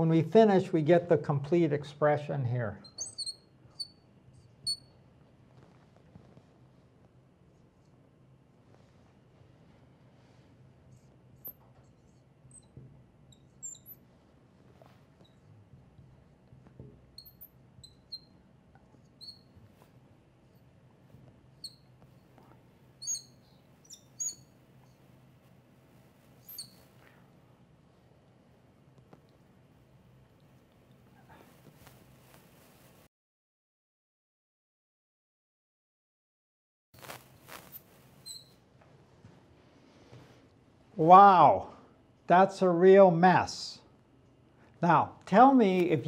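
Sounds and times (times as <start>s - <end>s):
faint low hum: 0.0s - 33.0s
marker squeaking on glass: 2.8s - 5.0s, 10.2s - 15.5s, 17.1s - 20.7s, 21.5s - 22.4s, 23.0s - 25.1s, 26.0s - 27.2s, 37.0s - 38.6s.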